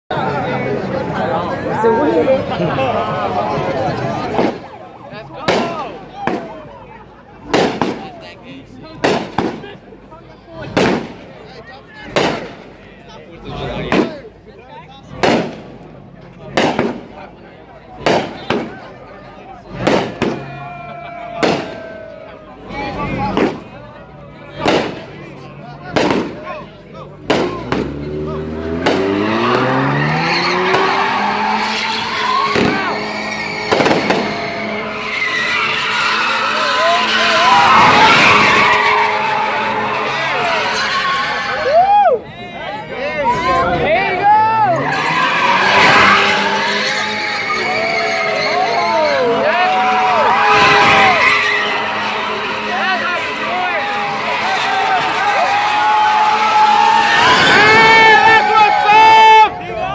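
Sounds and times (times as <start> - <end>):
crowd cheering: 0.1 - 15.6, 16.4 - 59.9
fireworks firing single shots: 9.0 - 9.7, 16.6 - 17.1, 24.6 - 25.1, 25.9 - 26.4, 33.6 - 34.3
car engine revving: 22.6 - 41.6, 43.3 - 58.6
tyres squealing: 27.6 - 41.8, 44.6 - 58.8.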